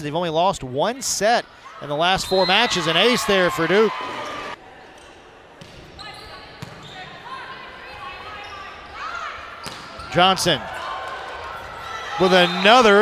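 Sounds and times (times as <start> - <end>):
echoing voices in gym: 0.0 - 13.0.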